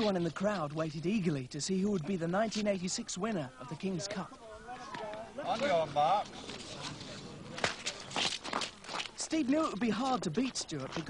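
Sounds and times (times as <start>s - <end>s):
skate blades scraping on ice: 5.5s - 9.8s.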